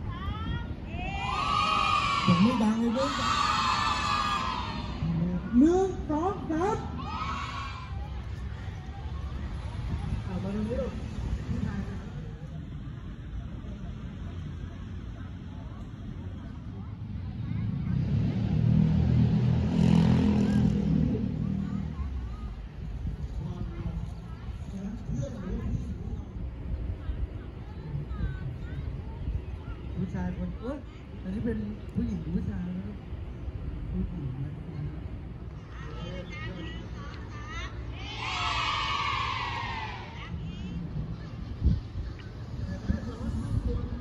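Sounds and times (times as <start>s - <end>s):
vehicle engine passing by: 16.4s - 24.4s.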